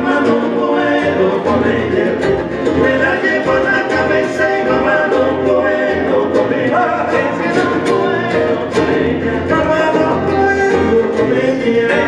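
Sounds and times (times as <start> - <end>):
acoustic bass guitar: 0.0 - 12.0
male vocal trio singing: 0.0 - 12.0
nylon-string guitars: 0.0 - 12.0.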